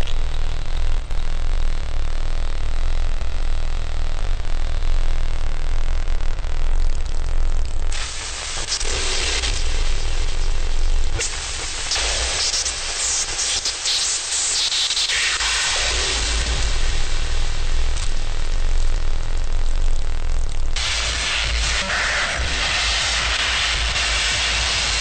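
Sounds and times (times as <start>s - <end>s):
deep bass drone: 0.0s - 13.2s, 15.6s - 25.0s
static-like hiss: 0.0s - 25.0s.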